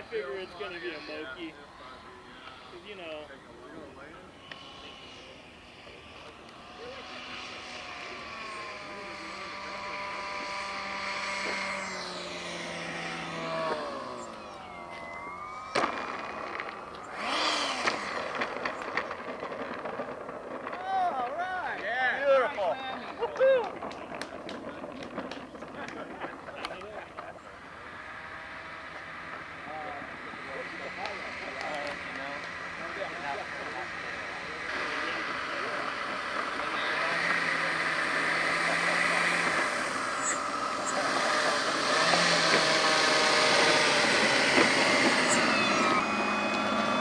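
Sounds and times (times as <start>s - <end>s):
electric ducted fan whining: 0.0s - 47.0s
model wheels knocking on asphalt: 17.9s - 21.4s, 23.0s - 26.4s.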